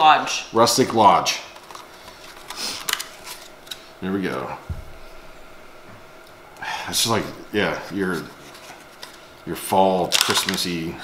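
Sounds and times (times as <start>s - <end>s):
plastic packaging crackling: 1.6s - 4.5s, 8.0s - 10.8s.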